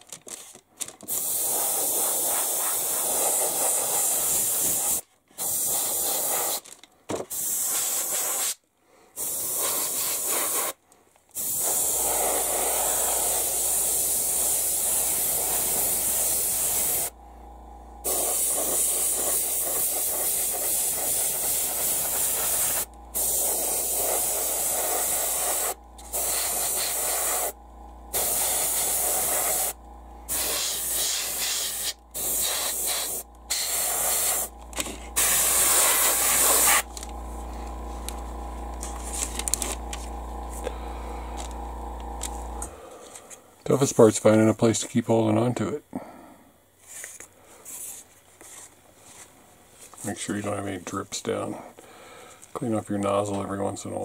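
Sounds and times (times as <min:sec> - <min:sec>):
airbrush hissing: 0:01.1 - 0:06.6, 0:07.3 - 0:08.6, 0:09.2 - 0:10.8, 0:11.4 - 0:17.2, 0:18.0 - 0:37.0.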